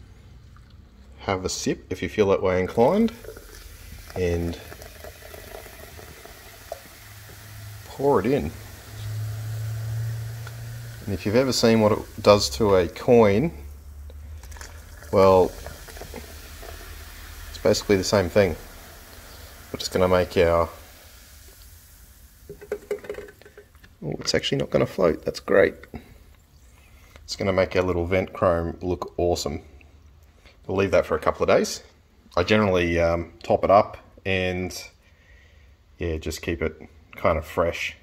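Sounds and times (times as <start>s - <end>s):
soda pouring and fizzing: 2.7s - 23.8s
plastic knocking on bucket: 22.5s - 23.6s.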